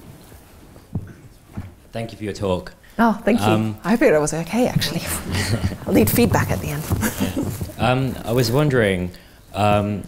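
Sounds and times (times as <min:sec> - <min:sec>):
microphone handling thumps: 0:00.9 - 0:01.8, 0:04.6 - 0:08.4.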